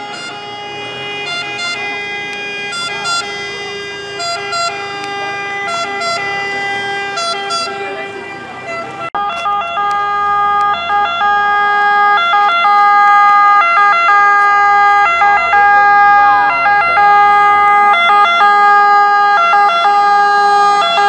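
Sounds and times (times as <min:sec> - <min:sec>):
truck engine running: 0:00.0 - 0:21.0
two-tone fire engine siren: 0:00.0 - 0:21.0.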